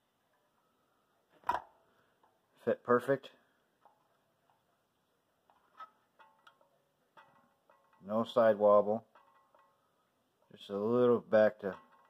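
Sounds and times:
small metallic clicks: 5.5s - 8.1s.

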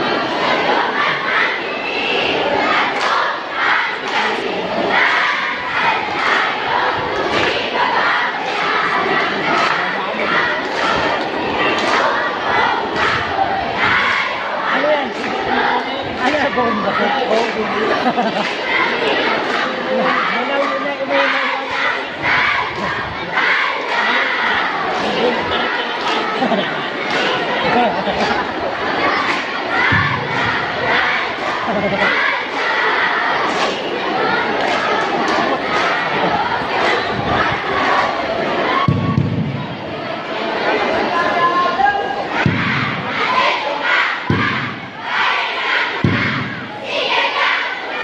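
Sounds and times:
group shouting a cheer: 0.0s - 39.9s, 40.7s - 48.0s.

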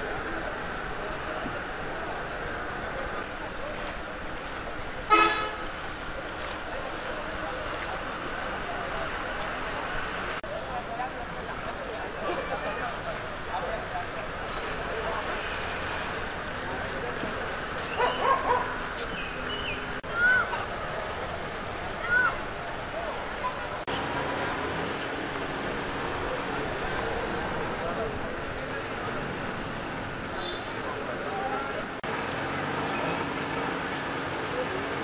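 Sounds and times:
vehicle horn toot: 5.1s - 5.7s, 30.4s - 30.8s.

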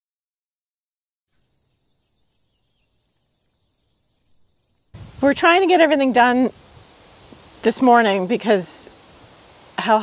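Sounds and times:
crickets chirring: 1.3s - 10.0s.

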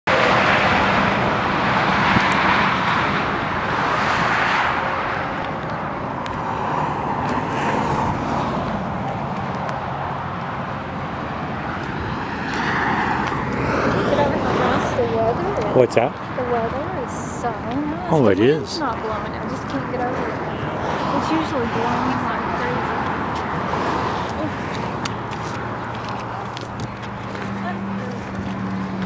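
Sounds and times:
highway traffic rumble: 0.0s - 29.0s.

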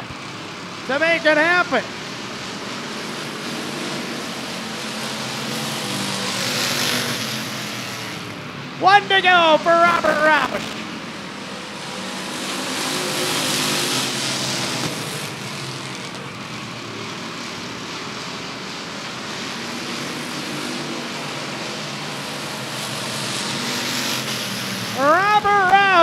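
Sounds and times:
race car engines droning: 0.0s - 26.0s
announcer talking over loudspeaker: 0.8s - 1.9s, 8.8s - 10.7s, 24.9s - 26.0s.

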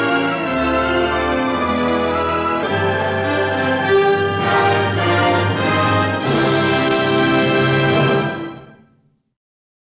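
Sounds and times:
orchestral music held chord: 0.0s - 8.9s.

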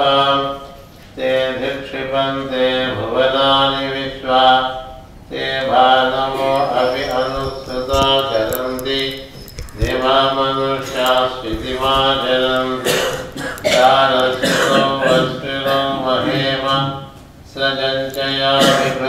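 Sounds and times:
man chanting melodically: 0.0s - 19.0s.

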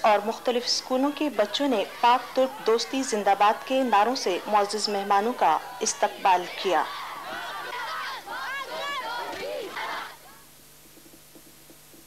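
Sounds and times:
children shouting slogans together: 0.0s - 10.4s.

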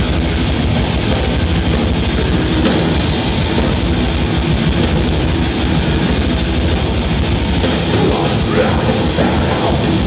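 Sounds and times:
distorted electric guitars: 0.0s - 10.0s
fast drumming: 0.0s - 10.0s.

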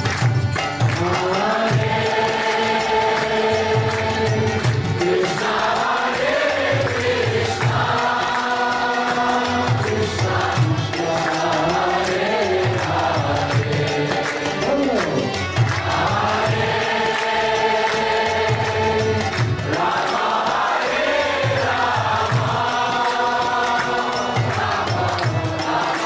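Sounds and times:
steady drum beat: 0.0s - 26.0s
group singing along: 0.9s - 26.0s
man leading a chant: 9.9s - 16.6s.

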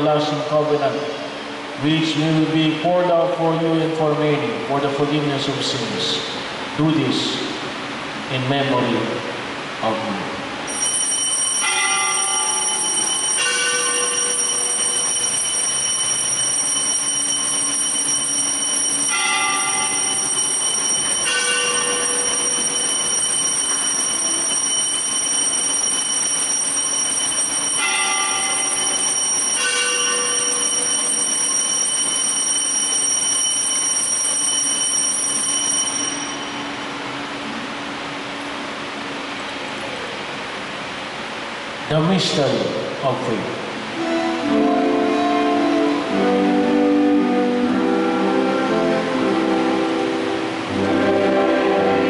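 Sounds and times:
steady high ringing: 0.0s - 52.0s
altar bells ringing chimes: 10.7s - 37.0s.

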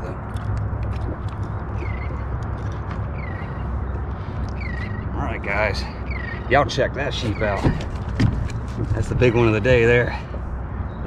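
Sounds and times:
water noise: 0.0s - 11.0s
wind: 0.0s - 11.0s.

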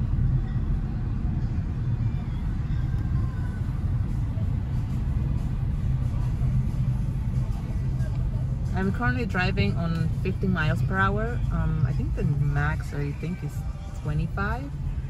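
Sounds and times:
car road and engine rumble: 0.0s - 15.0s.

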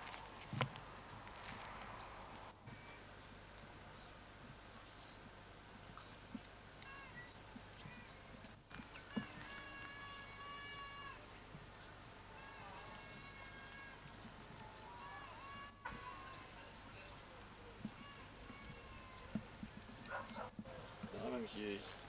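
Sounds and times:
tape hiss: 0.0s - 22.0s
drawn-out vocal calls: 5.9s - 22.0s.

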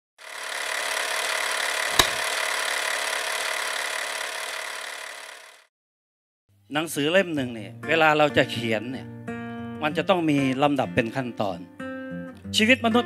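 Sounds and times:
sharp hit: 1.9s - 2.3s.

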